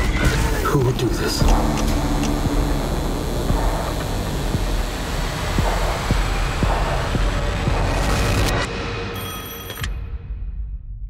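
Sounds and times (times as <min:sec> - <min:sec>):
deep rumbling drone: 0:00.0 - 0:09.0.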